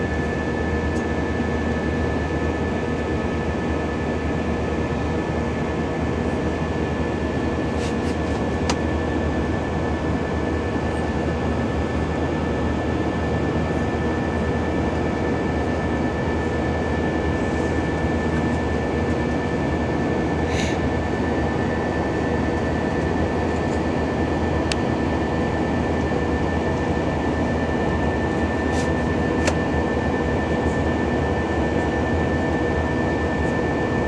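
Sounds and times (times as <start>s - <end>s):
jet engine drone: 0.0s - 34.0s.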